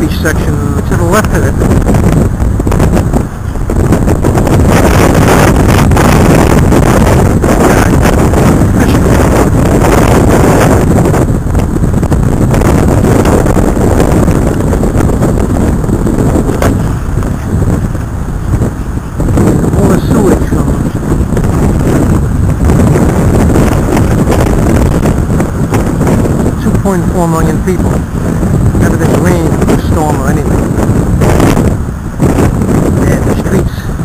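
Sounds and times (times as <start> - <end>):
rough waves washing: 0.0 - 34.0
storm wind buffeting microphone: 0.0 - 34.0.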